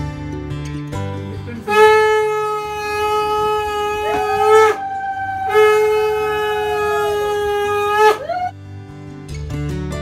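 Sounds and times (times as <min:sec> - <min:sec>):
conch shell blown: 0:01.6 - 0:08.5.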